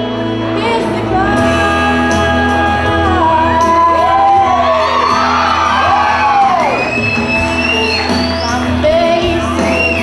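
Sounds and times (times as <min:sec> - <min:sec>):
instrumental accompaniment: 0:00.0 - 0:10.0
girl singing into a microphone: 0:00.6 - 0:04.4, 0:08.8 - 0:10.0.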